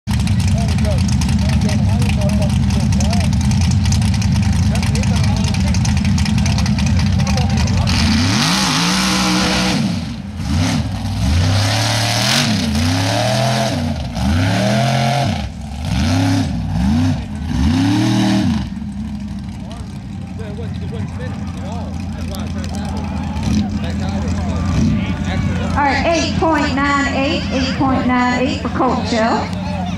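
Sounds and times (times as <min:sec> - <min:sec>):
mud spraying and tyres spinning: 0:00.1 - 0:25.8
buggy engine revving: 0:00.1 - 0:29.9.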